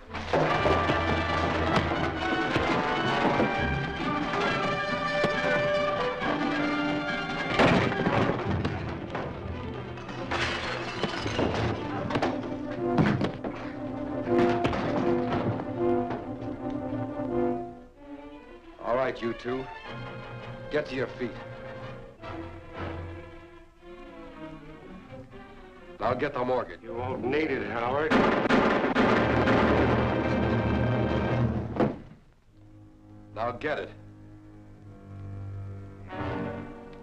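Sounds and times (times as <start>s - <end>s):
heavy blows: 0.0s - 18.0s, 26.9s - 33.4s
loud orchestral action music: 0.4s - 10.0s
fistfight thuds and crashes: 7.4s - 16.3s, 28.0s - 32.2s.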